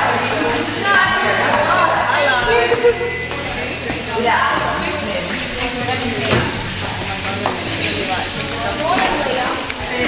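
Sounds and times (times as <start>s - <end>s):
food sizzling on griddle: 0.0s - 10.0s.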